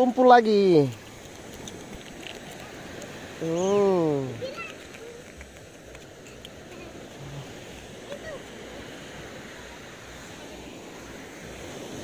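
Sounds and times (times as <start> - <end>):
surf waves washing on beach: 0.0 - 12.0.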